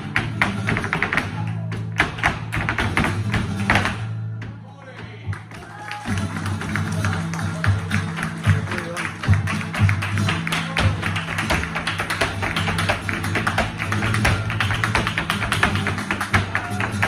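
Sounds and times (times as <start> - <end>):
flamenco guitar: 0.0 - 17.0
handclaps: 5.0 - 17.0.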